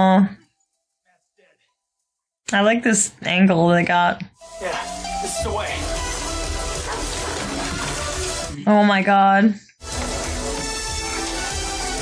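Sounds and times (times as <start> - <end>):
film score music: 4.4 - 8.7.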